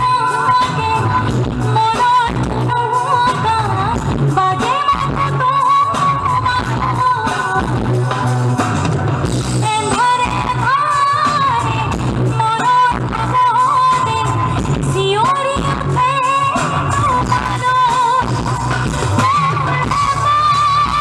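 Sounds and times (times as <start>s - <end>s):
woman singing into microphone: 0.0s - 8.6s, 9.4s - 21.0s
band playing: 0.0s - 21.0s.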